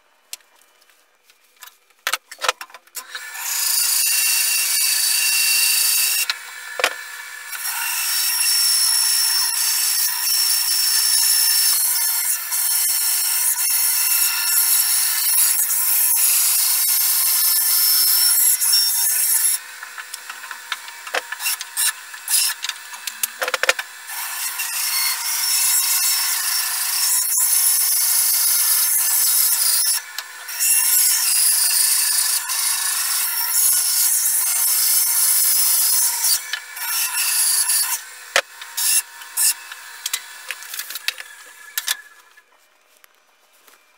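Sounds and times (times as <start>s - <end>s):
band saw cutting wood: 3.0s - 42.5s.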